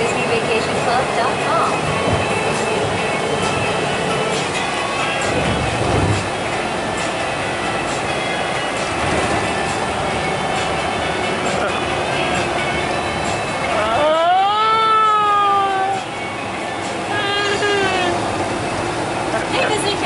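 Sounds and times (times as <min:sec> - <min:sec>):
bus road and engine noise: 0:00.0 - 0:20.0
faint voices: 0:11.1 - 0:14.4, 0:15.5 - 0:18.4.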